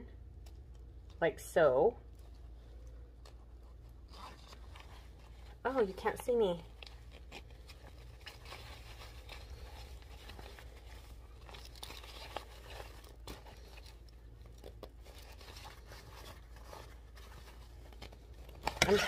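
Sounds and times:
fabric rustling and crinkling: 0:00.0 - 0:19.0
small clicks and scrapes: 0:02.0 - 0:19.0.

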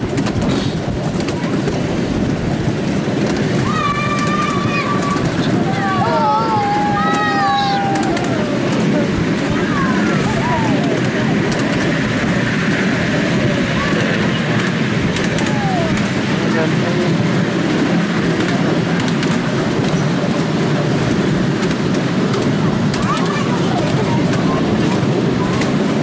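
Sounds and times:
wheel clicks: 0:00.0 - 0:06.1, 0:06.8 - 0:16.5
miniature train rumbling on track: 0:00.0 - 0:26.0.

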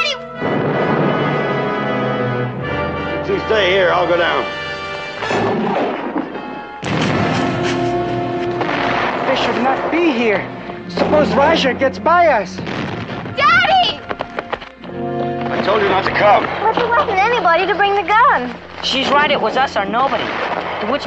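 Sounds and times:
orchestral film score: 0:00.0 - 0:19.4.

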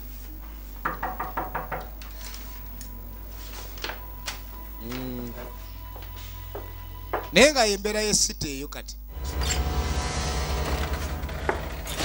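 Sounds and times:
knocking on a door: 0:00.8 - 0:01.9.

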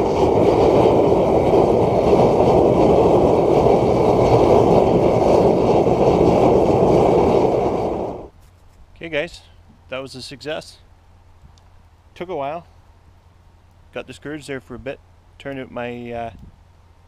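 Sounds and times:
oil burner roaring: 0:00.0 - 0:08.4.

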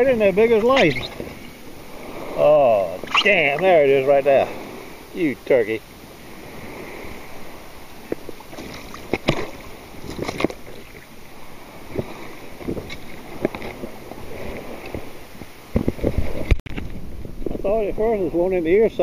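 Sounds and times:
water sloshing and splashing: 0:06.2 - 0:16.6.

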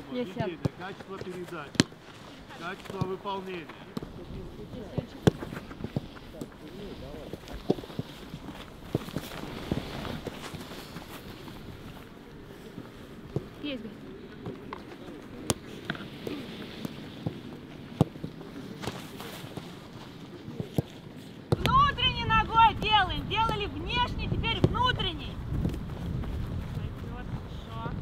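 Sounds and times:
wind buffeting microphone: 0:21.6 - 0:28.0.

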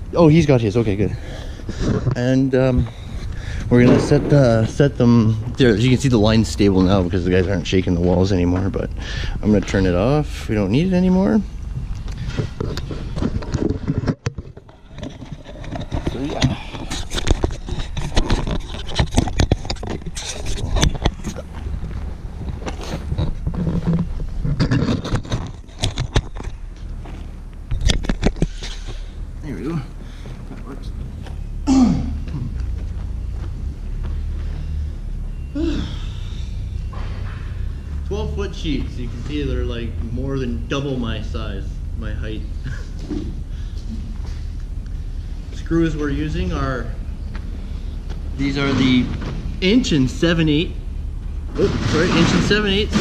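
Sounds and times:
indistinct voices: 0:00.0 - 0:12.9, 0:15.6 - 0:18.2, 0:28.4 - 0:47.0, 0:51.5 - 0:53.0
steady low rumble: 0:00.0 - 0:53.0
sharp knocks and clatters: 0:03.8 - 0:05.9, 0:12.2 - 0:26.9, 0:27.7 - 0:29.1, 0:51.5 - 0:53.0.

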